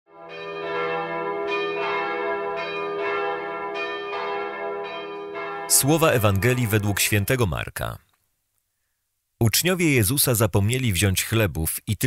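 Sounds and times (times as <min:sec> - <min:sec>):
ringing bell tones: 0:00.3 - 0:07.4.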